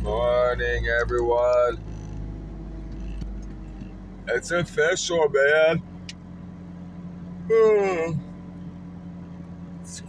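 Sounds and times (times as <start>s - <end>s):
car engine humming: 0.0s - 10.0s.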